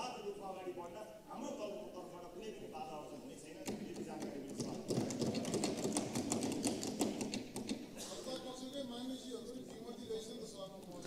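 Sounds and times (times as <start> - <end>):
sharp clicks and taps: 3.6 - 7.9.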